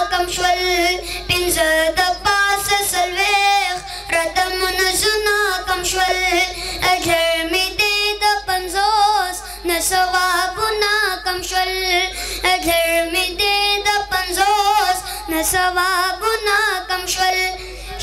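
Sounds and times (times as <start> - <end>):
boy singing into a microphone: 0.0 - 18.0
short breaths: 12.1 - 12.4.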